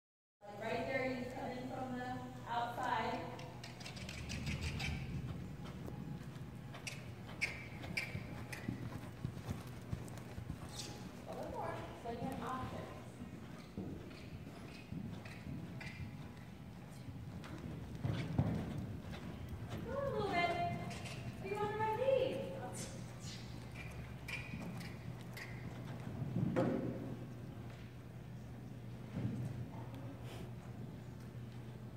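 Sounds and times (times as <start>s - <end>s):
low hum: 0.5s - 31.9s
horse hooves thudding on sand: 2.8s - 28.0s.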